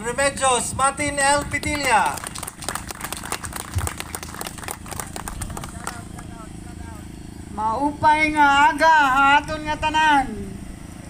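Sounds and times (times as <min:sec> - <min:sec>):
crowd applauding: 0:01.4 - 0:06.4.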